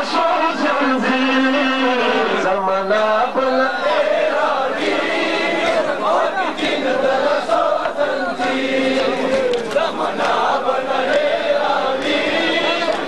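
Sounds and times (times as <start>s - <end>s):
crowd of men chanting a lament: 0.0s - 13.0s.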